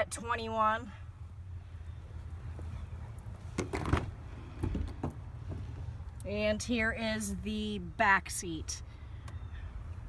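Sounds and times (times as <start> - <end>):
rustling and bumping: 3.4 - 5.9.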